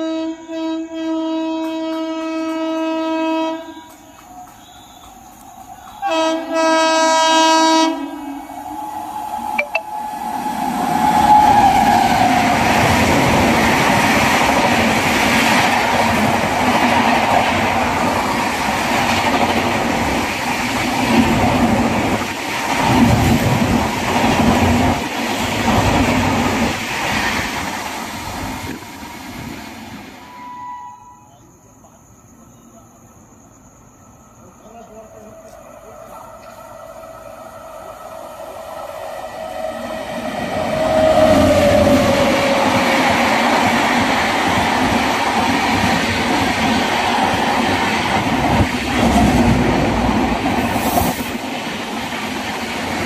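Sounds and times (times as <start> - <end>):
train horn blast: 0.0 - 4.0, 6.0 - 8.2, 30.3 - 31.3
train passing at speed: 0.0 - 53.0.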